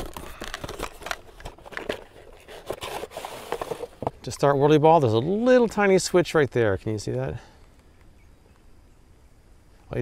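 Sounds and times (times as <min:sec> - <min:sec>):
cardboard box being opened: 0:00.0 - 0:04.2
plastic tray crinkling: 0:00.0 - 0:04.2.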